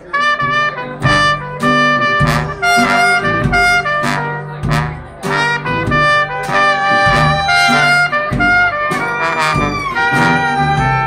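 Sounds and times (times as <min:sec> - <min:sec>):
bass line: 0:00.0 - 0:11.0
clarinet: 0:00.0 - 0:11.0
drum beats: 0:00.0 - 0:11.0
jazz band playing: 0:00.0 - 0:11.0
trombone: 0:00.0 - 0:11.0
trumpet: 0:00.0 - 0:11.0.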